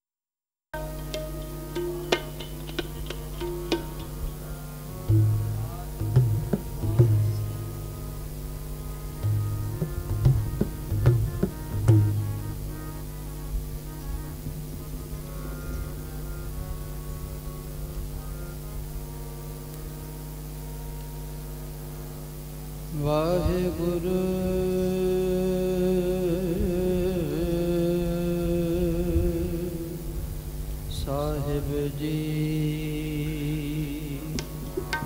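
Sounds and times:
harmonium drone: 0.8 - 35.0
person singing long held notes: 3.2 - 35.0.

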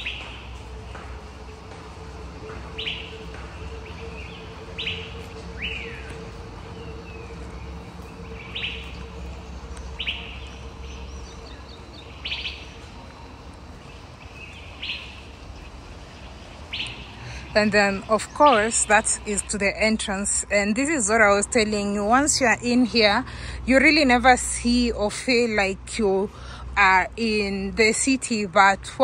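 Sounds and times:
bird calling in sharp notes: 0.0 - 13.0
faint steady hum: 0.0 - 29.0.

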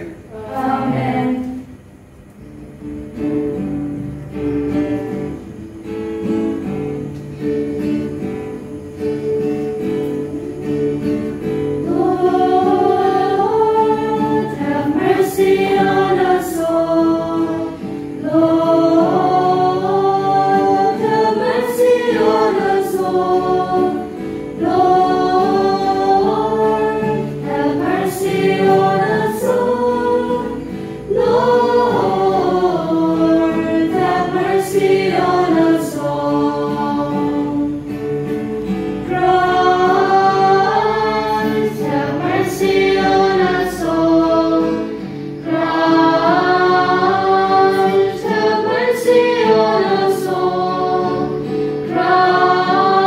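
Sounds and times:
church choir singing a hymn: 0.0 - 1.9, 3.2 - 53.0
sustained accompaniment: 0.0 - 53.0.

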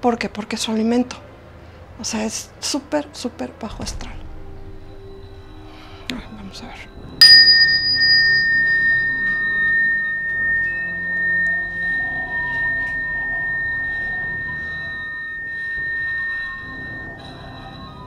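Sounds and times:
chime bar ringing: 7.2 - 18.0.

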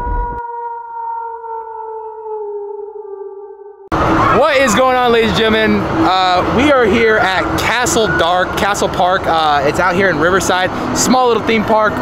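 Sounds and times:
howl sound effect sinking in pitch: 0.0 - 9.2
loud voices: 3.9 - 10.4.

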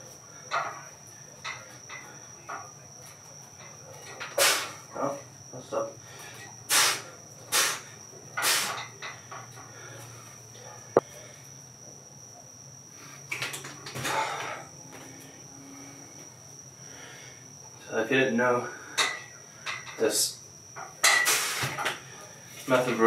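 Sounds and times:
cricket trill: 0.0 - 23.0
man breathing forcefully: 14.0 - 14.7.

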